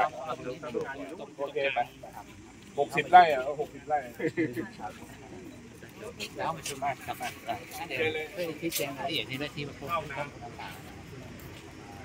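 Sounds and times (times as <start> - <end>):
murmur of conversation: 0.0 - 12.0.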